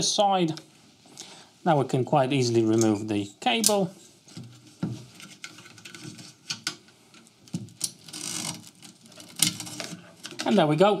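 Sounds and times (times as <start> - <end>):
cable rustling: 3.7 - 10.6
cable clicks and scrapes: 5.1 - 10.5.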